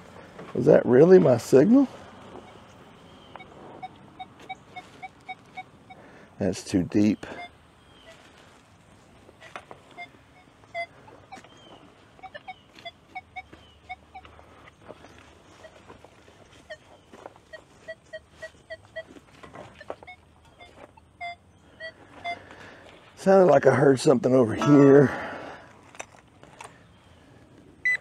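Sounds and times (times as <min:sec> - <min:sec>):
metal detector beeps: 0:02.3 - 0:06.1, 0:07.0 - 0:08.2, 0:09.4 - 0:14.4, 0:15.0 - 0:15.9, 0:16.5 - 0:22.6.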